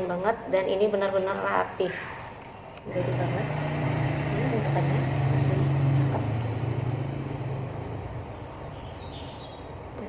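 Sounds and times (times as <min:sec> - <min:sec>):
passing motor vehicle drone: 0:02.9 - 0:09.1.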